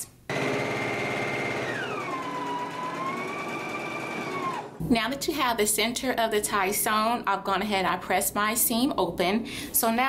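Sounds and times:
sewing machine stitching: 0:00.3 - 0:04.8.

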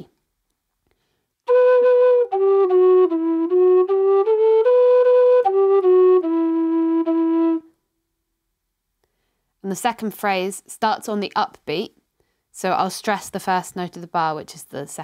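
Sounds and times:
low whistle playing march: 0:01.5 - 0:07.7.

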